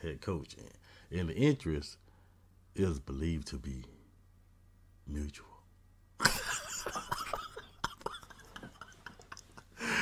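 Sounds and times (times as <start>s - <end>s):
man laughing hard: 6.2s - 10.0s.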